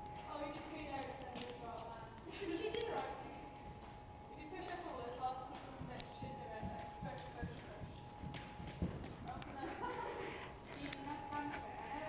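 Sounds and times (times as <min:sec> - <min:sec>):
hoofbeats of horses walking: 0:00.0 - 0:12.0
indistinct voices talking: 0:09.2 - 0:12.0.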